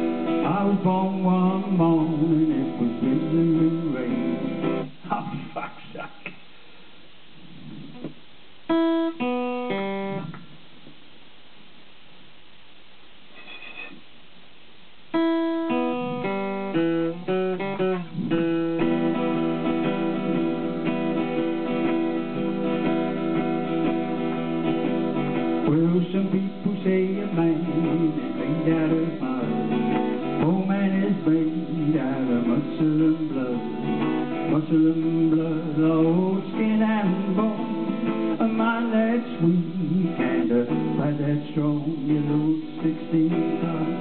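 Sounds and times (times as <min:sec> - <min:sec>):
acoustic guitar strumming and picking: 0:00.0 - 0:05.6, 0:08.7 - 0:10.4, 0:15.1 - 0:44.0.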